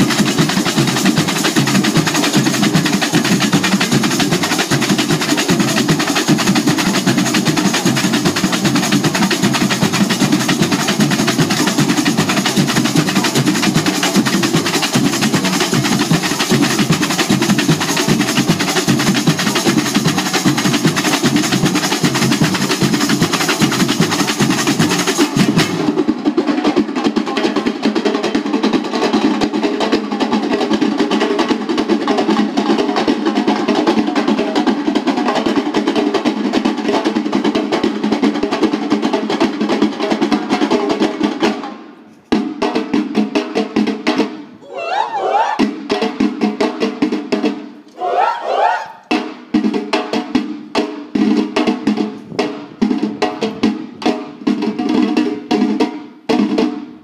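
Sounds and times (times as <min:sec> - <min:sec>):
samba percussion band: 0:00.0 - 0:57.0
group shouting a chant: 0:44.6 - 0:45.7, 0:47.9 - 0:49.1.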